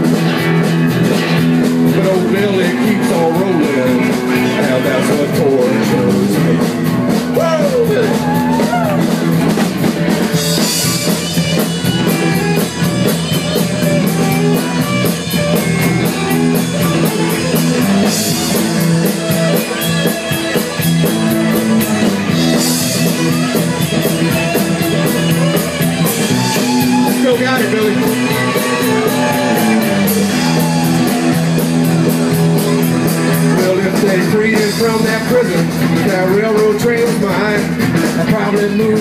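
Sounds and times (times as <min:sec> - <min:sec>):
live rock band playing: 0:00.0 - 0:39.0.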